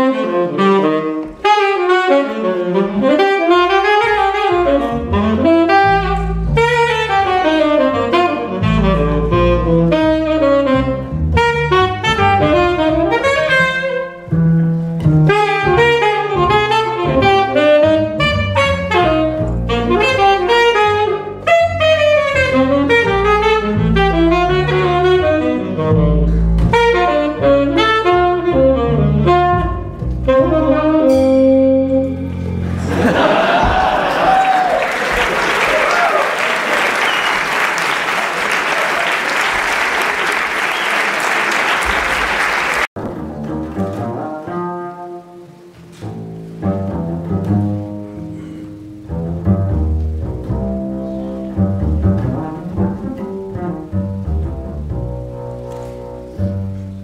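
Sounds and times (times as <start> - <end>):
tenor saxophone jazz line: 0.0 - 32.9, 34.8 - 57.0
double bass low notes: 0.0 - 34.2, 43.0 - 57.0.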